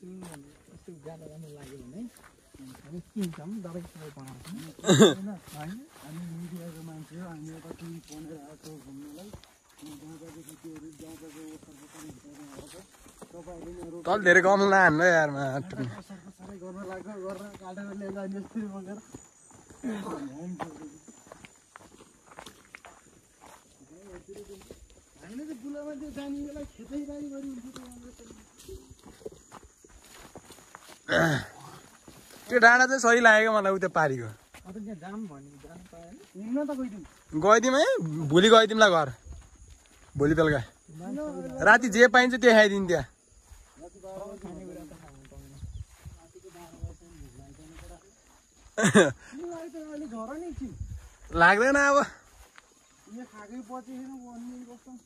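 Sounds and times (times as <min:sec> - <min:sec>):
footsteps on grass: 0:00.0 - 0:55.0.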